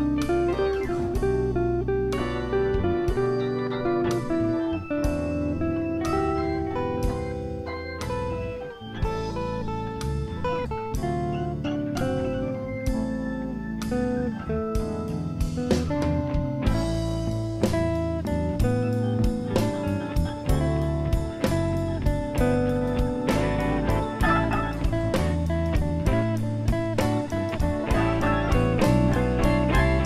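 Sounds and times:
bass line: 0.0 - 30.0
electric guitar lead lines: 0.0 - 30.0.

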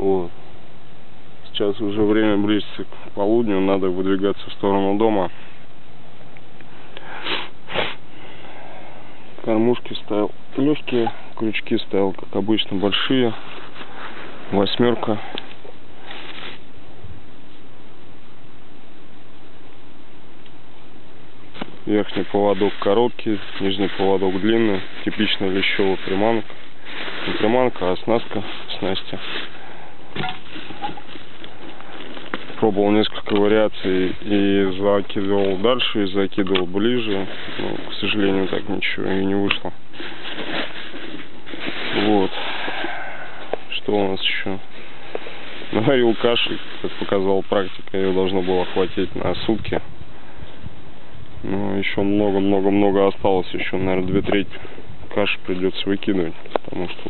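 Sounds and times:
steady background hiss: 0.0 - 57.0
breaths through the nose: 6.7 - 9.1
steady rushing noise: 40.3 - 49.8.

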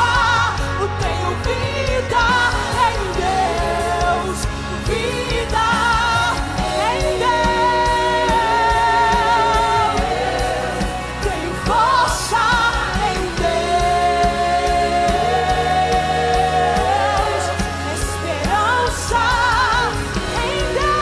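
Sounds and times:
band with drums: 0.0 - 21.0.

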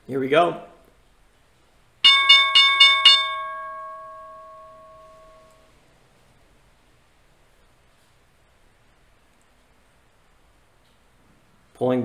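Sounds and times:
bell struck and ringing: 2.0 - 5.7.

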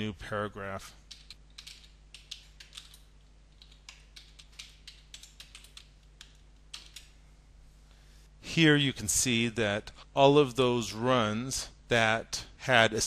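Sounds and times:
typing on computer keyboard: 1.1 - 7.1.

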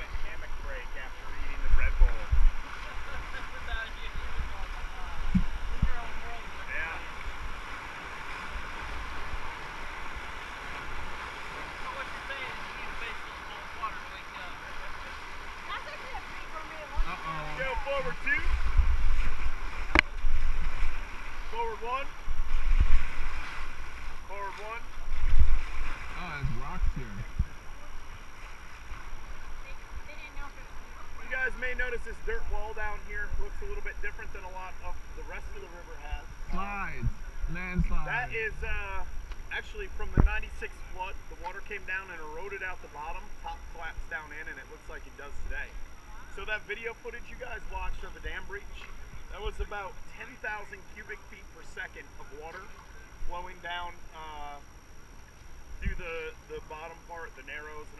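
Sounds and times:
river water rushing: 2.5 - 27.0
wind buffeting microphone: 25.0 - 27.6.

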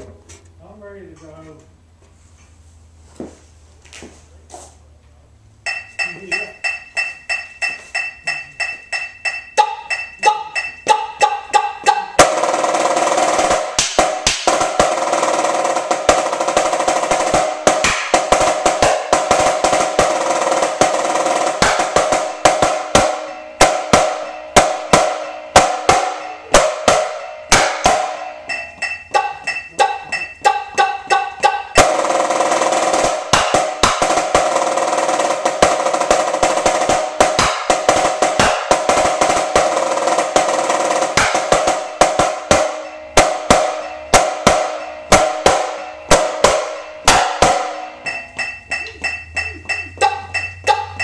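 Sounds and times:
marching snare drum: 11.2 - 28.4, 31.4 - 48.0.

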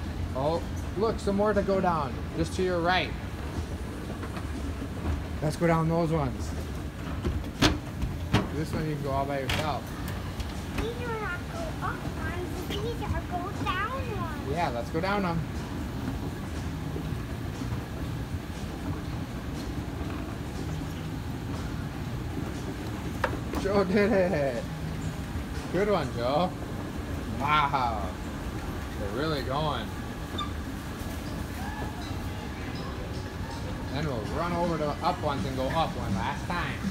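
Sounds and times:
escalator rumbling: 0.0 - 36.9.

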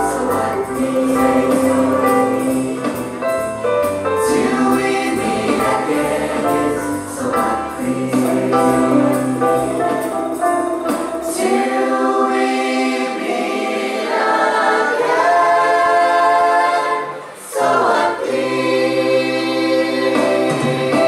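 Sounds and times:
choir singing through microphones: 0.0 - 3.5, 4.1 - 21.0.

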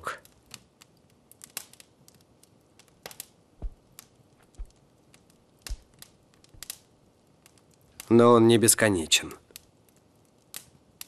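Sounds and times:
soft low thumps: 3.6 - 4.8.

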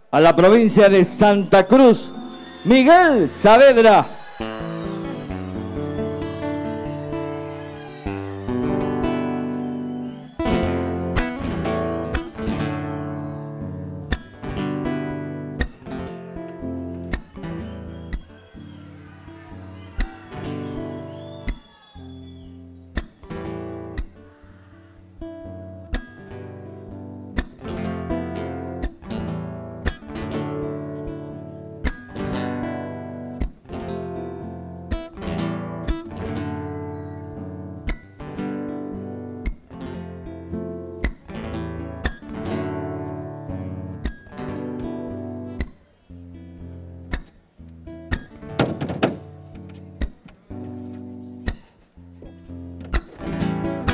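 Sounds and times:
acoustic guitar strumming: 0.8 - 53.9.

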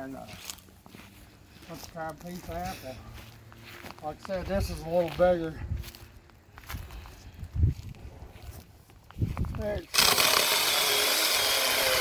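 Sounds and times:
footsteps on grass and gravel: 0.0 - 9.9.

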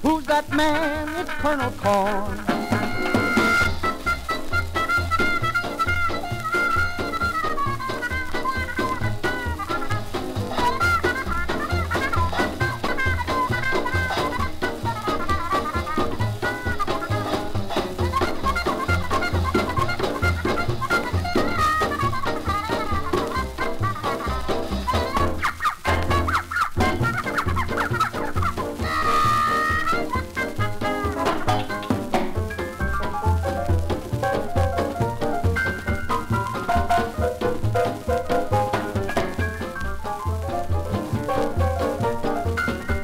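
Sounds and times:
swing dance band on old record: 0.0 - 43.0.

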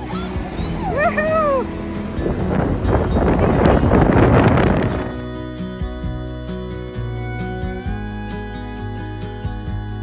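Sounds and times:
guitar music: 0.0 - 10.0
wind buffeting microphone: 0.1 - 5.3.

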